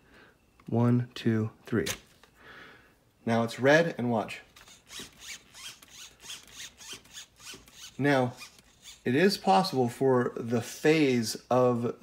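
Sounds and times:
steering servo whirring: 0:04.5 - 0:09.4.

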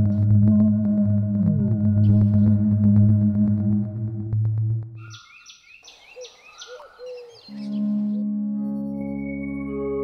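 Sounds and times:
background music with low drone: 0:00.0 - 0:05.1, 0:07.5 - 0:10.0
birds chirping: 0:05.0 - 0:08.3.

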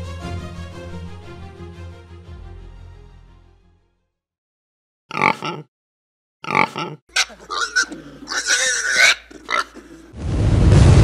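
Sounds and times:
pig grunting and squealing: 0:05.1 - 0:05.7, 0:06.4 - 0:10.2.

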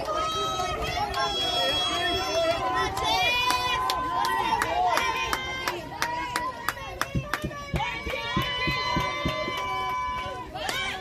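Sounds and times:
voices chanting a cheer: 0:00.0 - 0:11.0.

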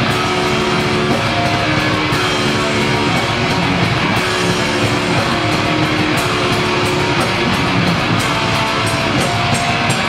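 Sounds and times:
distorted electric guitars: 0:00.0 - 0:10.0
fast drumming: 0:00.0 - 0:10.0.

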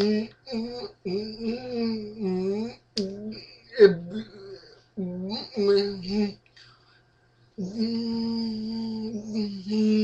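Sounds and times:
person humming one pitch: 0:00.0 - 0:06.4, 0:07.6 - 0:10.0.

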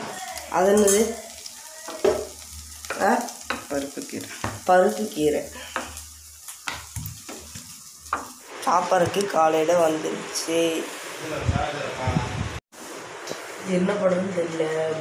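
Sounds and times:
greens sizzling in pan: 0:00.0 - 0:11.4.

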